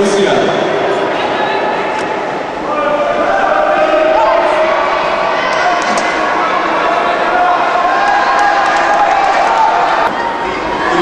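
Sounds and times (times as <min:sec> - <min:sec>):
onlookers shouting in echoing hall: 0:00.7 - 0:11.0.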